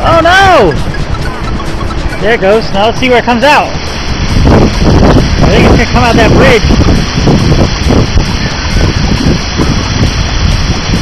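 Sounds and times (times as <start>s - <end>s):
waterfall pouring into pool: 0.0s - 0.8s, 2.3s - 11.0s
wind on microphone: 0.0s - 11.0s.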